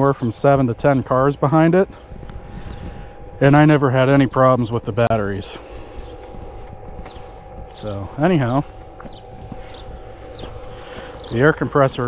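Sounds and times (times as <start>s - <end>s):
faint steady hum: 0.0s - 12.0s
low wind rumble: 0.0s - 12.0s
high falling bird chirps: 1.9s - 12.0s.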